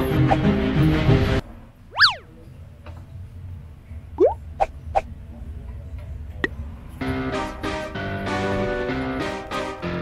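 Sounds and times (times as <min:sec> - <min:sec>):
whistle-like swoop: 0:01.9 - 0:02.3.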